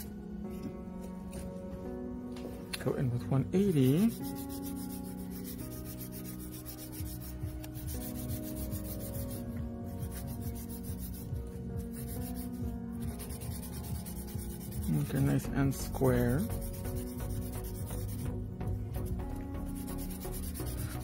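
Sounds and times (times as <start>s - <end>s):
soft background music: 0.0s - 21.0s
nail file rasping on nail: 3.7s - 15.1s, 16.4s - 18.4s, 19.6s - 21.0s.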